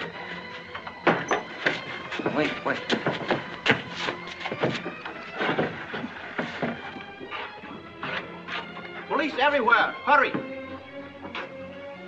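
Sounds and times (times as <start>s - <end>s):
knocks and thuds on wood: 1.0s - 7.1s.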